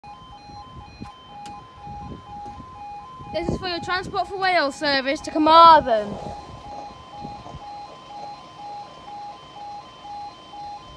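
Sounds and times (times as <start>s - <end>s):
two-tone level crossing alarm: 0.0s - 10.9s.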